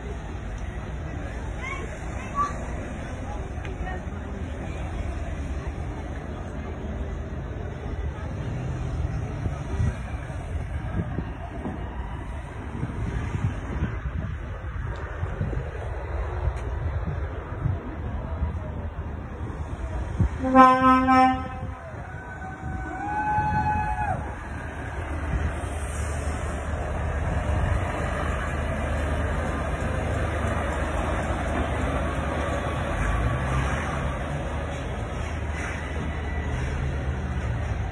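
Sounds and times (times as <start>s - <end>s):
heavy lorry driving past: 0.0s - 37.9s
truck engine rumble: 0.0s - 37.9s
wind buffeting microphone: 9.2s - 33.0s.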